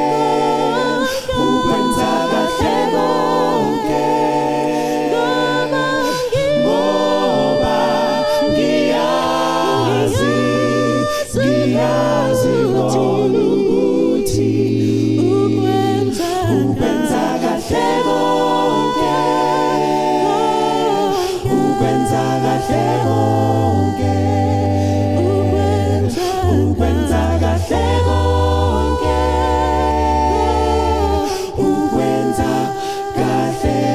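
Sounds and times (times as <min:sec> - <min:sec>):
a cappella group singing harmony: 0:00.0 - 0:33.9.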